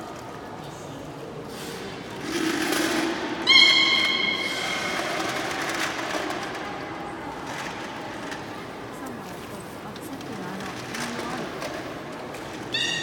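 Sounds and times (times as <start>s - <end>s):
murmur of poolside noise: 0.0s - 13.0s.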